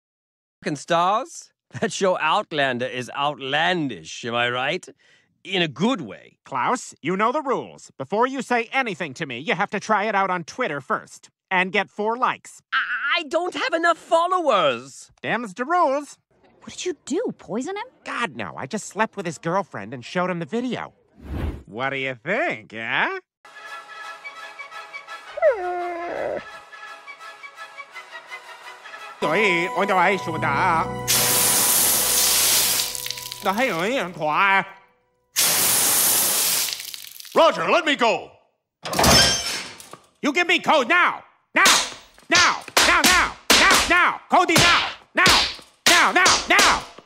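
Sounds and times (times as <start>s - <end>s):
light background music: 23.5s - 34.8s
cartoon dog whining cry: 25.3s - 26.6s.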